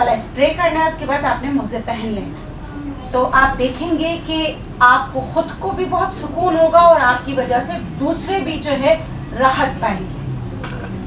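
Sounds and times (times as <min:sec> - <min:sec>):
glass bowls clinking: 0:10.6 - 0:11.0.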